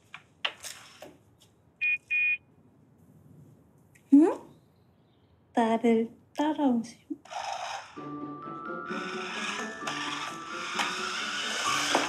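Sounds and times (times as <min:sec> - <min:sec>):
toy car horn beeps: 0:01.8 - 0:02.4.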